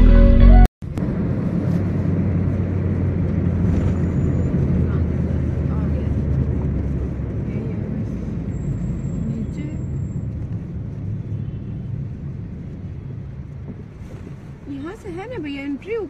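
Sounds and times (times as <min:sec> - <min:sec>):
road and engine rumble: 0:00.0 - 0:16.0.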